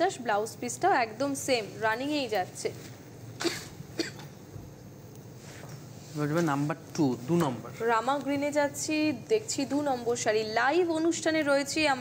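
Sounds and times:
short coughs: 3.4s - 4.4s.

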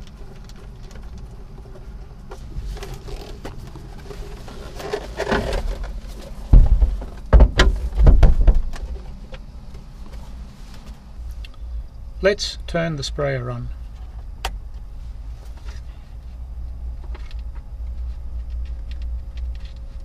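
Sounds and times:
heavy knocks: 6.5s - 8.7s.

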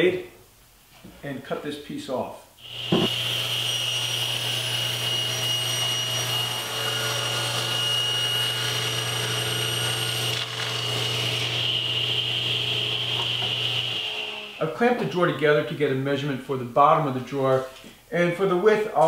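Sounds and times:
table saw cutting wood: 2.6s - 15.7s.

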